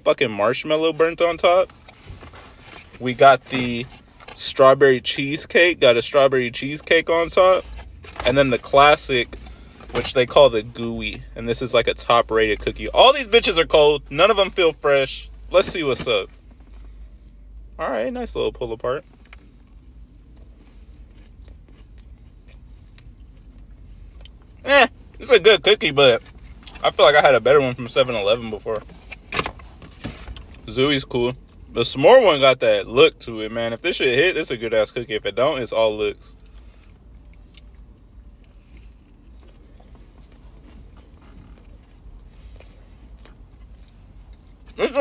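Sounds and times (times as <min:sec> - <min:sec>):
low rumble inside a car: 0:00.0 - 0:45.0
chewing and mouth smacks: 0:19.2 - 0:24.6
person chewing cookie: 0:19.2 - 0:24.6, 0:36.4 - 0:44.8.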